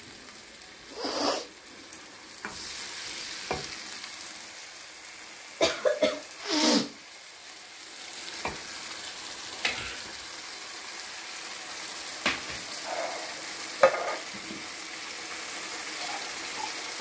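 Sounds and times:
sauce sizzling in a wok: 0:00.0 - 0:17.0
spoon scraping a pan: 0:12.5 - 0:14.3
spoon knocking on a pan: 0:13.8 - 0:14.2.

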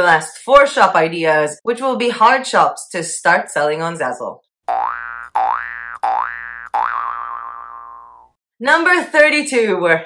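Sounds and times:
cartoon boing sound effect: 0:04.7 - 0:08.4.

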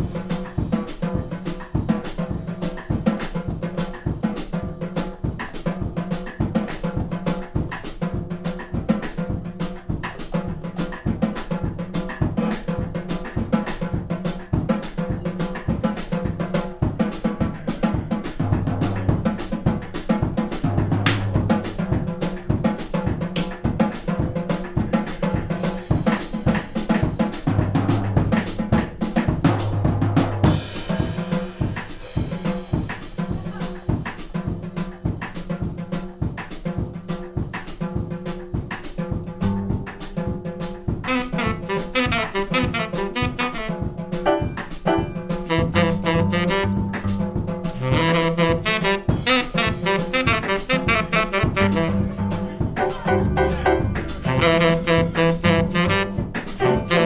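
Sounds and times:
drum kit calypso groove: 0:00.0 - 0:57.0.

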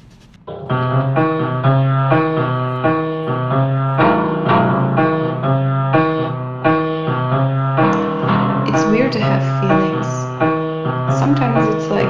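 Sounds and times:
slow piano chords: 0:00.4 - 0:12.0.

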